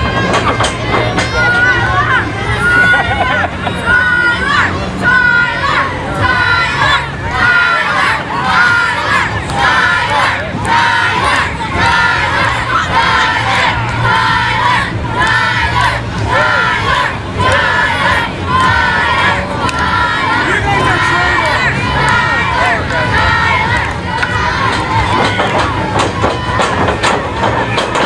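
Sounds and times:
crowd chanting in unison: 4.0s - 28.0s.

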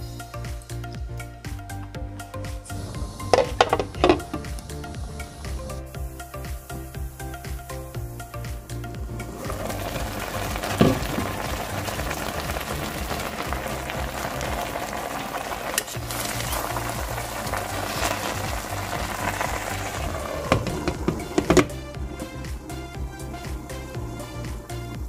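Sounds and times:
background music: 0.0s - 25.0s
meat and vegetables sizzling in a pot: 2.6s - 25.0s.

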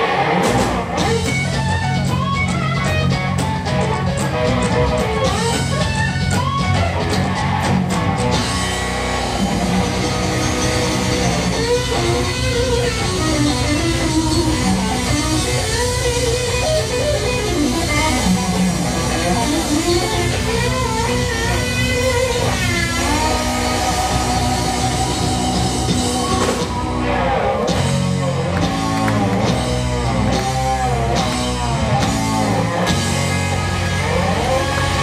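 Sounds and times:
bass guitar: 0.0s - 35.0s
drum kit: 0.0s - 35.0s
lead electric guitar: 0.0s - 35.0s.

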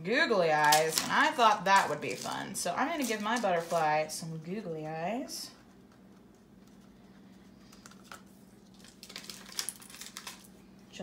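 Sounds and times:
plastic bag crinkling: 0.5s - 4.2s, 7.9s - 10.6s.

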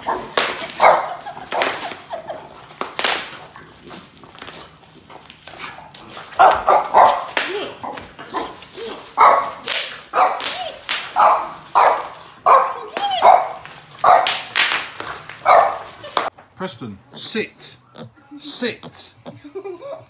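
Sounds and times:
dog barking: 0.0s - 2.6s, 6.3s - 16.3s.

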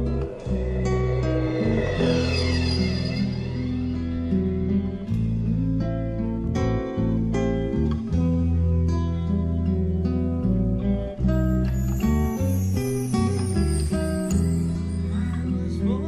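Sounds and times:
high descending sweeps: 0.0s - 5.4s
low bass notes: 0.0s - 13.8s
instrumental guitar music: 0.0s - 16.0s.

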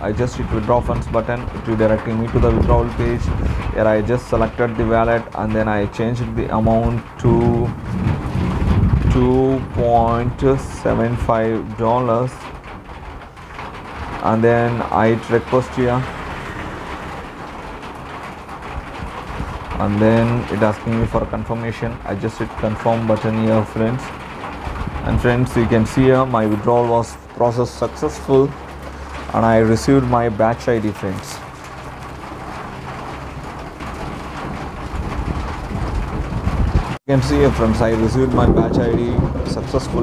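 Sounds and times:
low rumbling background noise: 0.0s - 40.0s
low hum: 5.7s - 11.8s.

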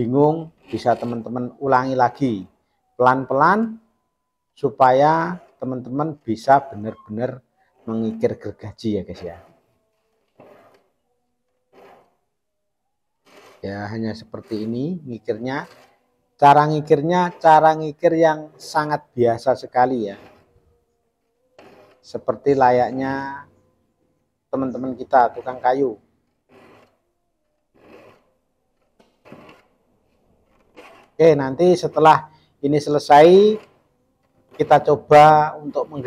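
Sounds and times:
metal file rasping on saw teeth: 5.2s - 8.4s, 9.1s - 10.9s, 11.6s - 12.2s, 13.2s - 17.8s, 19.8s - 20.5s, 21.6s - 23.2s, 26.4s - 27.0s, 27.7s - 28.3s, 30.4s - 32.2s, 32.8s - 33.8s, 34.4s - 36.0s.

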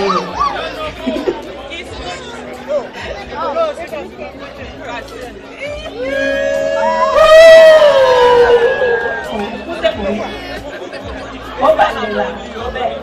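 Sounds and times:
chatter of guests: 0.0s - 13.0s.

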